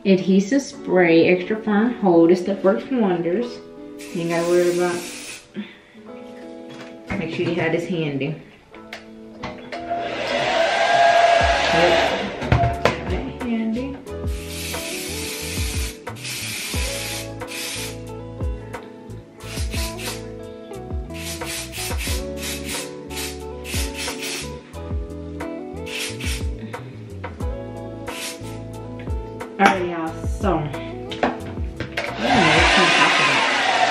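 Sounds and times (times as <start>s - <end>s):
background music with steady beat: 1.2s - 7.9s, 8.5s - 33.9s
aerosol spray hissing: 4.0s - 5.5s, 14.3s - 18.1s, 19.4s - 20.4s, 21.1s - 24.6s, 25.8s - 26.6s, 28.1s - 28.6s.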